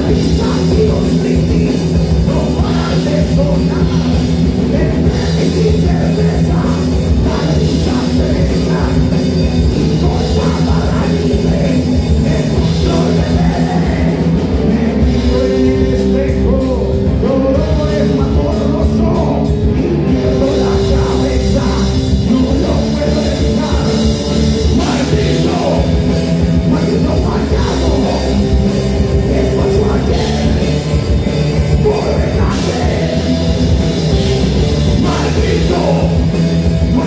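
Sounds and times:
rock band playing live: 0:00.0 - 0:37.0.

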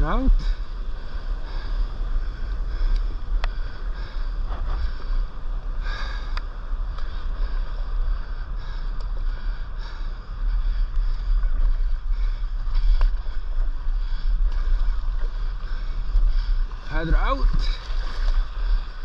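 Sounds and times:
low wind rumble on microphone: 0:00.0 - 0:19.0.

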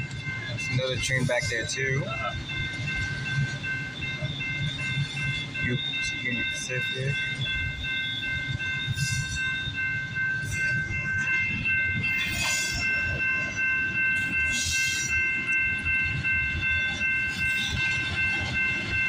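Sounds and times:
steady high tones: 0:00.0 - 0:19.0
train wheels rumbling on rails: 0:00.0 - 0:19.0.

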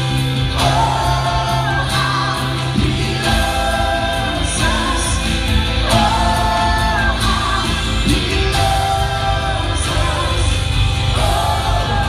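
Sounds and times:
congregation singing: 0:00.0 - 0:12.0
worship band playing: 0:00.0 - 0:12.0.

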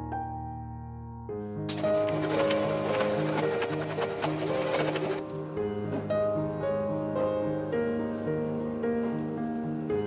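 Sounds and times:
background music: 0:00.0 - 0:10.0
sewing machine stitching: 0:01.7 - 0:05.3.

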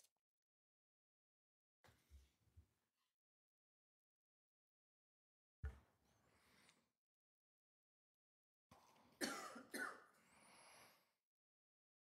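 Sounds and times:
person coughing: 0:09.2 - 0:10.1.

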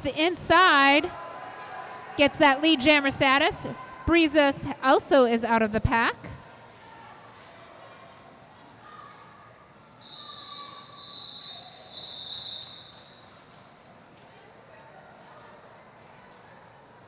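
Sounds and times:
referee whistle blasts: 0:10.0 - 0:13.2.

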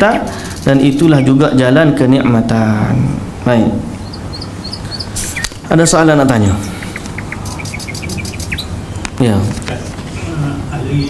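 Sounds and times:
bird chirping: 0:00.4 - 0:02.3, 0:03.9 - 0:09.1.

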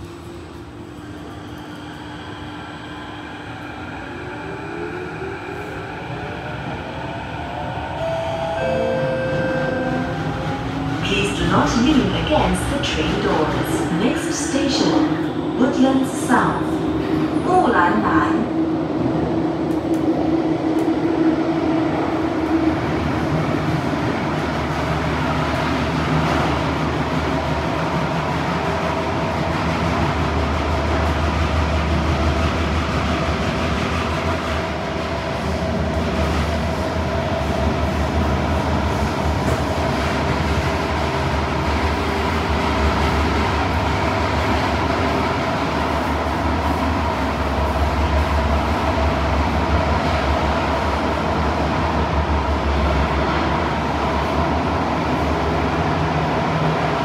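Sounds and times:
metro train running gear rumble: 0:00.0 - 0:57.0
steady humming tones: 0:00.0 - 0:57.0.

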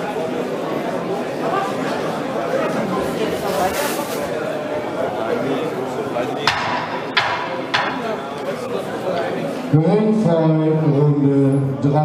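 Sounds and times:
crowd chatter: 0:00.0 - 0:12.0
sharp knocks: 0:06.4 - 0:08.2.

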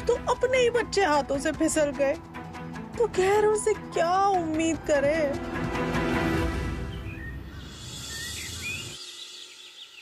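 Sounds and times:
small birds chirping: 0:06.8 - 0:10.0.

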